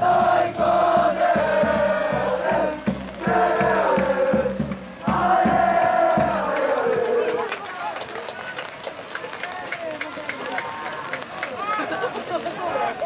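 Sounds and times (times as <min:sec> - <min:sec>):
supporters chanting: 0:00.0 - 0:08.0.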